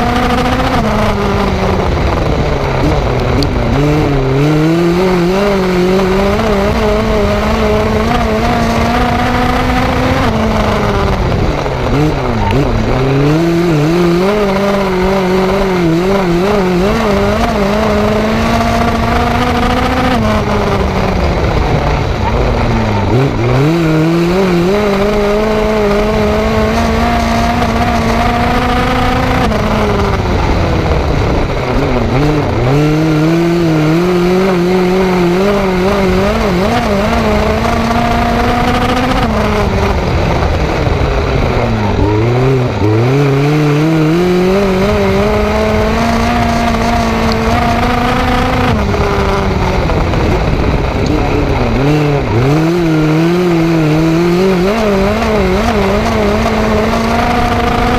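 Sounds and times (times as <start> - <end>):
race car engine revving: 0.0 - 57.9
wind noise: 0.0 - 57.9.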